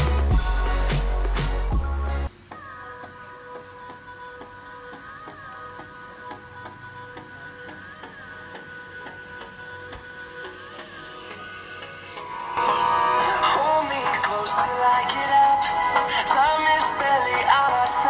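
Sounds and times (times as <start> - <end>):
electronic dance music from phone speaker: 0.0 - 18.0.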